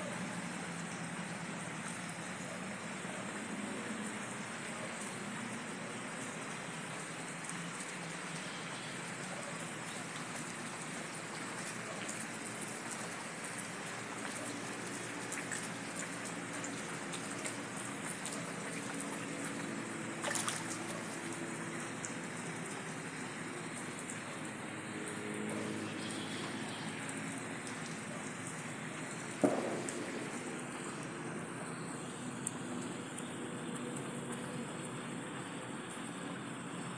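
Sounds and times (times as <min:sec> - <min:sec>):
rain and water hissing: 0:00.0 - 0:36.9.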